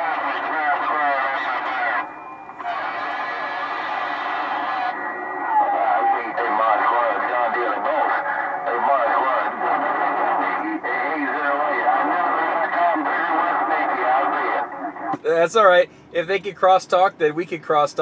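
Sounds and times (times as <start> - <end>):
voices over radio static: 0.0 - 18.0
faint steady whistle: 1.8 - 7.2.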